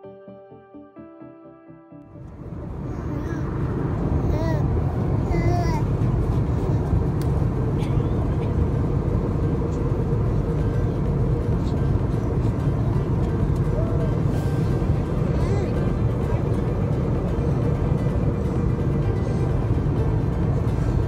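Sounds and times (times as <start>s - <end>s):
airliner cabin noise: 2.1s - 21.0s.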